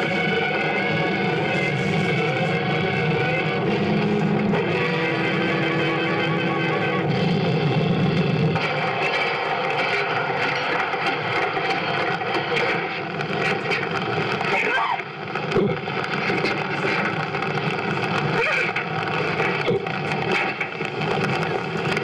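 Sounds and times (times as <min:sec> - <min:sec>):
held drone tones: 0:00.0 - 0:21.5
dense wash of noise: 0:00.0 - 0:22.0.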